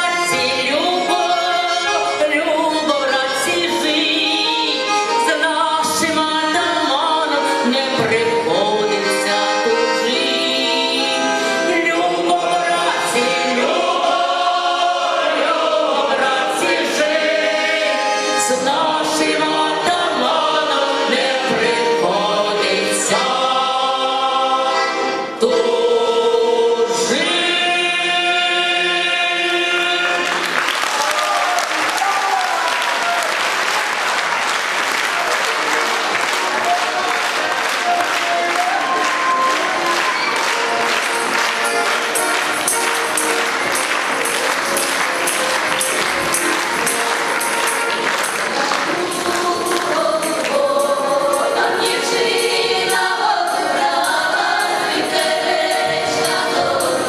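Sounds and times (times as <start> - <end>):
male choir singing: 7.6 - 30.5, 47.4 - 57.0
audience applauding: 30.1 - 51.4.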